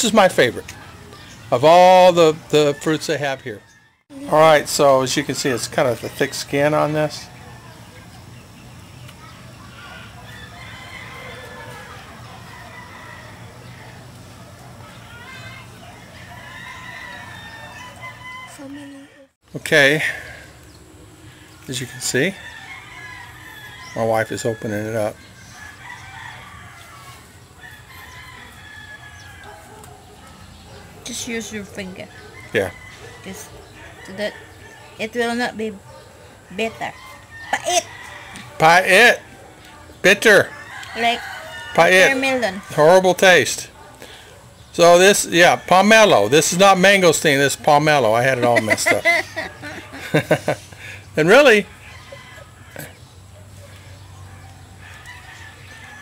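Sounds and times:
chickens calling: 0:00.0 - 0:56.0
rooster crowing: 0:02.5 - 0:04.2, 0:09.6 - 0:14.2, 0:15.2 - 0:19.4, 0:21.7 - 0:56.0.

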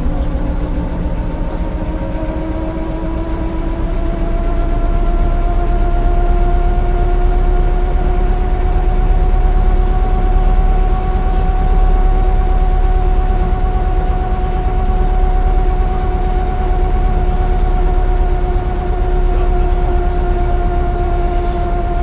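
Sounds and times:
bus engine rumble: 0:00.0 - 0:22.0
steady whine: 0:00.0 - 0:22.0.

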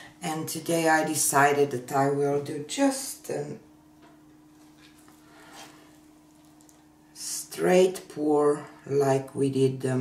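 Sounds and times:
faint steady hum: 0:00.0 - 0:10.0
soft rustle: 0:04.5 - 0:06.8.

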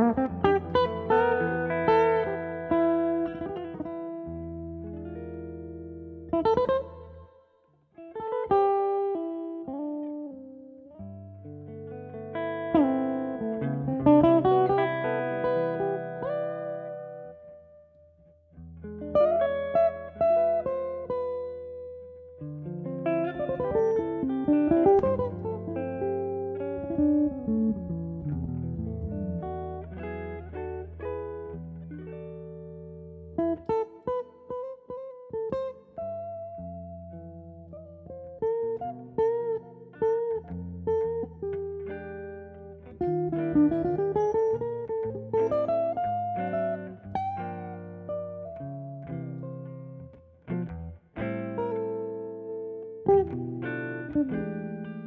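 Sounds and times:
plucked guitar notes: 0:00.0 - 0:55.0.

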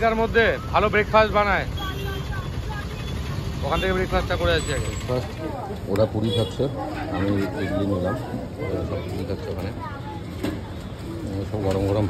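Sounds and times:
idling vehicle engines in traffic: 0:00.0 - 0:12.0.

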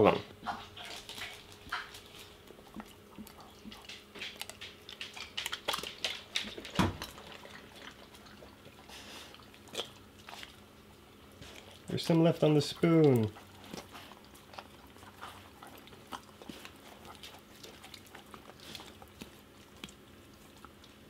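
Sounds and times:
dogs licking wet food: 0:00.3 - 0:21.0.

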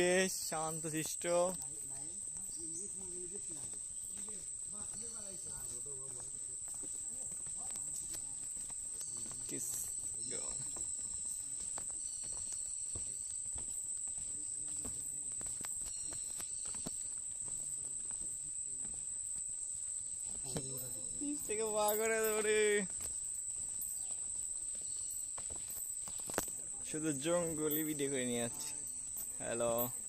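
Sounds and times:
footsteps on wooden boardwalk: 0:00.0 - 0:30.0
high-pitched insect drone: 0:00.0 - 0:30.0.

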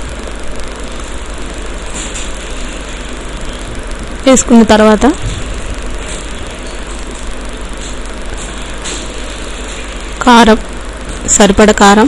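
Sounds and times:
low hum: 0:00.0 - 0:12.0
steady background noise: 0:00.0 - 0:12.0.

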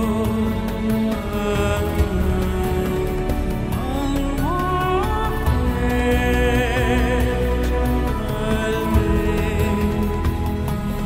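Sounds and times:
background music with held notes: 0:00.0 - 0:11.0.

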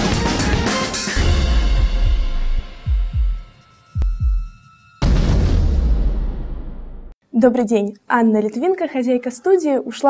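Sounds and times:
deep electronic bass thumps: 0:01.2 - 0:07.1.

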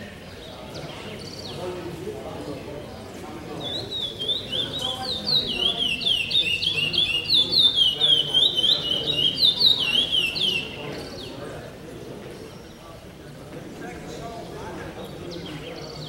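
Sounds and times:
songbird singing: 0:00.1 - 0:02.7, 0:03.4 - 0:11.6, 0:14.1 - 0:16.0.

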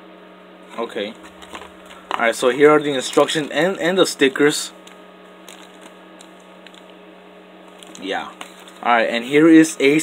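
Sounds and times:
low steady hum: 0:00.0 - 0:10.0
plastic bag crinkling: 0:01.2 - 0:03.8, 0:04.8 - 0:07.0, 0:07.6 - 0:09.0.

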